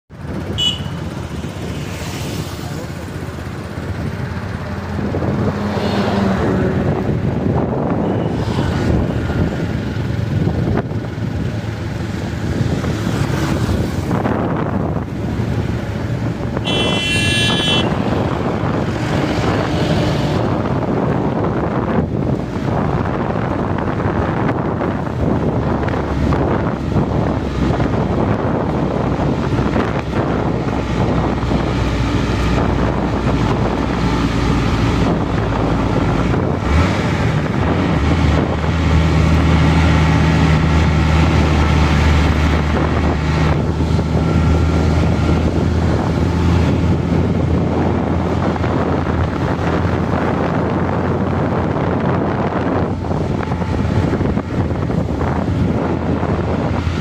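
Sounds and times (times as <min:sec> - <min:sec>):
vehicle engine and road noise: 0:00.1 - 0:57.0
wind rushing over microphone: 0:00.1 - 0:57.0
short horn toot: 0:00.5 - 0:01.1, 0:16.6 - 0:18.3.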